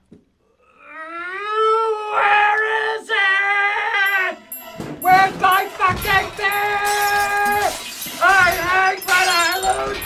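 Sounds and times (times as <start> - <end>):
man screaming in rage: 1.1 - 4.4.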